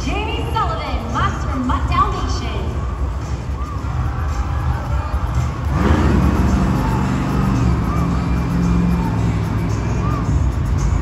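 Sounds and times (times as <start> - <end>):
arena music: 0.0 - 11.0
truck engine revving: 3.0 - 11.0.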